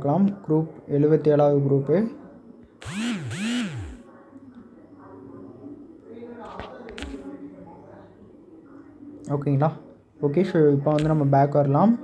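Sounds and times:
small electric motor whirring: 2.8 - 4.0.

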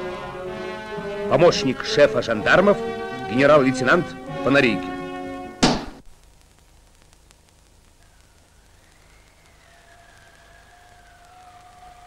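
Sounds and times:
wavering whistle-like tone: 8.0 - 12.0.

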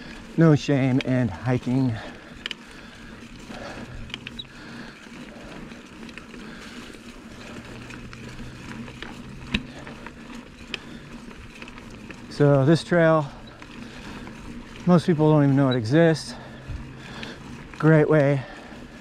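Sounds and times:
bike clicks and knocks: 0.0 - 19.0
bike tyre and drivetrain noise: 0.0 - 19.0.

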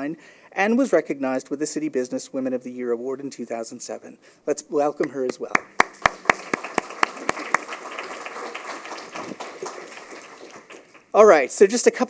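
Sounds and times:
loud claps close to microphone: 5.0 - 11.2
audience applause: 5.8 - 11.1.

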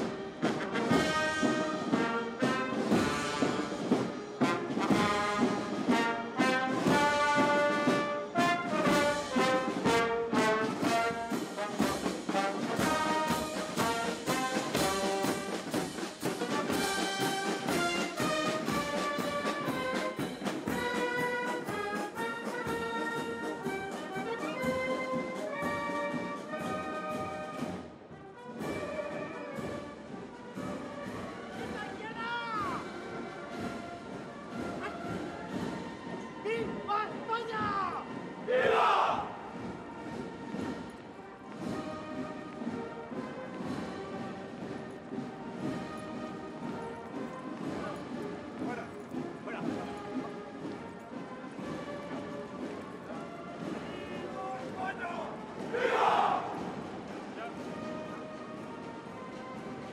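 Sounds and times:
military band playing a march: 0.0 - 59.9.

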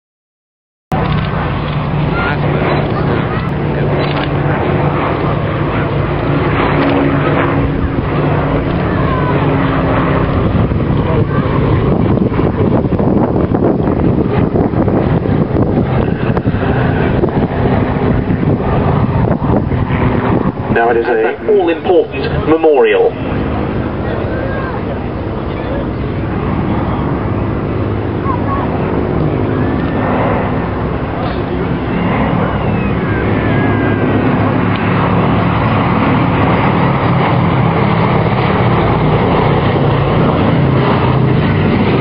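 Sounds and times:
propeller plane droning past: 0.9 - 42.0.

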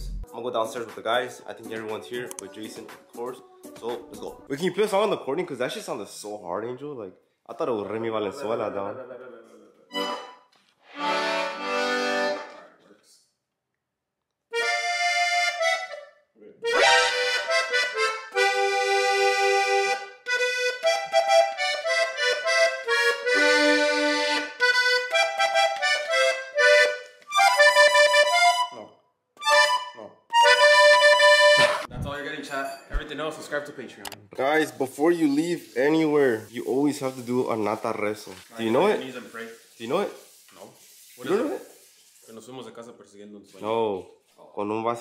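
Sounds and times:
button accordion playing melody: 9.9 - 12.6, 14.5 - 31.9.

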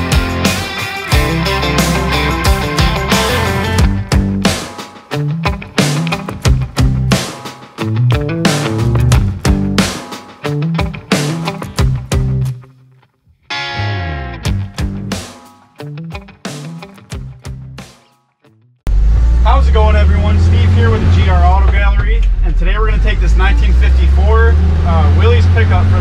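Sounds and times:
guitar music: 0.0 - 18.8
pickup engine droning: 18.9 - 26.0
people talking: 19.4 - 26.0.

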